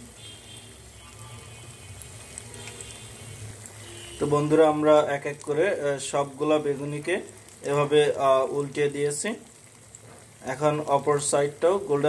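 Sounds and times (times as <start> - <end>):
vegetables deep-frying in oil: 0.0 - 12.0.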